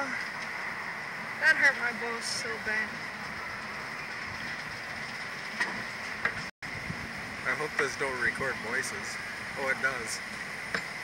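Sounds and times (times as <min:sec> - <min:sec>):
steady hiss: 0:06.7 - 0:11.0.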